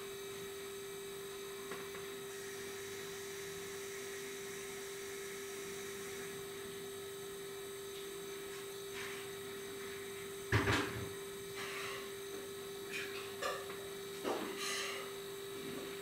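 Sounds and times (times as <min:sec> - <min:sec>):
steady hum: 0:00.0 - 0:16.0.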